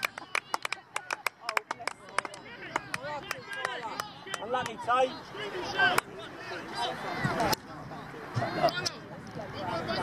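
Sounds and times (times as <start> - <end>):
scattered hand claps: 0.0 - 4.8.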